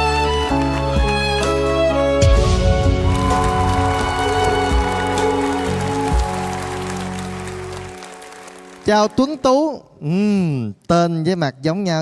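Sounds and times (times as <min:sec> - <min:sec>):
audience applause: 0:00.0 - 0:01.7, 0:02.6 - 0:09.7.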